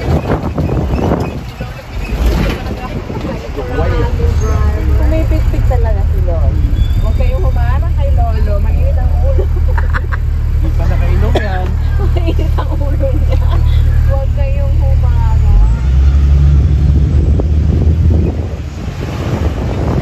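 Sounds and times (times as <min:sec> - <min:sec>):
people talking: 0:00.0 - 0:16.3
bus engine and road rumble: 0:00.0 - 0:20.0.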